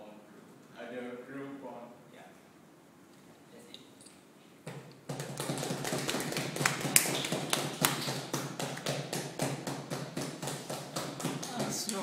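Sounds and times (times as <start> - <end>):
people clapping: 5.0 - 12.0.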